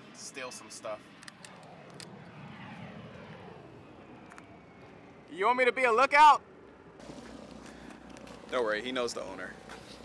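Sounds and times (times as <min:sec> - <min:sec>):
distant aircraft passing: 0:00.0 - 0:10.0.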